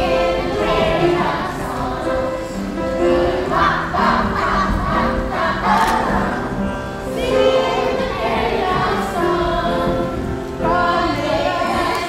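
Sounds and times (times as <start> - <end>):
children's choir singing: 0.0 - 12.0
music: 0.0 - 12.0.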